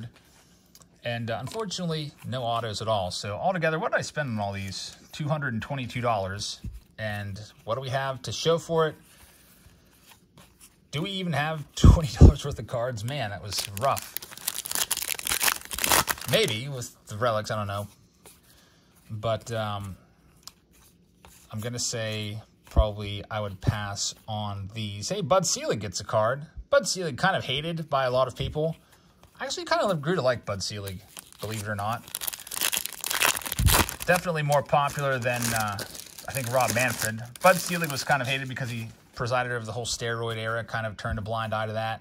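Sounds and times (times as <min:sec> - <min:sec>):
foil wrapper crinkling: 0:12.3 - 0:16.7, 0:30.7 - 0:38.9.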